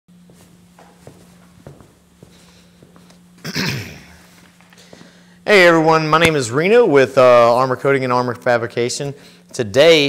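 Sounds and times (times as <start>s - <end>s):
footsteps on concrete floor: 0.1s - 5.2s
low electrical hum: 0.1s - 10.0s.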